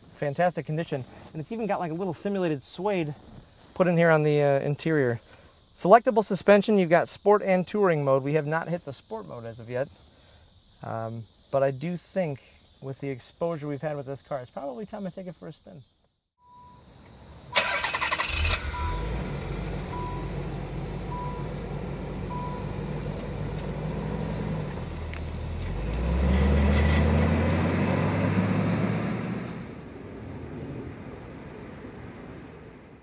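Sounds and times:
car warning chime beeping: 16.4 - 16.9, 17.6 - 23.2
car engine starting and idling: 16.5 - 29.7.

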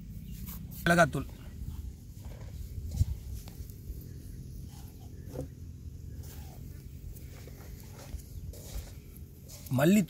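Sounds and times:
steady low rumble: 0.0 - 9.8.

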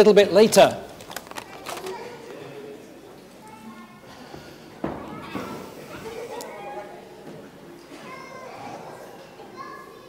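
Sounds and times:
large room murmur: 0.0 - 10.0
distant children chattering: 1.3 - 10.0.

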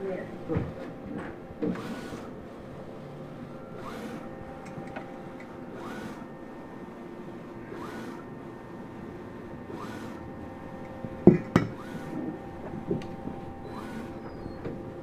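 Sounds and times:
printer carriage whine: 0.0 - 15.0
printer steady hum: 0.0 - 15.0.

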